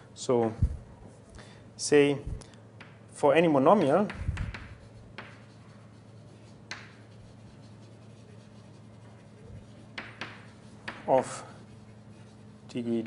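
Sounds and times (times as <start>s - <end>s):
steady low hum: 0.0s - 13.0s
writing scrapes and taps on board: 4.1s - 5.7s, 6.6s - 7.2s, 8.6s - 11.8s.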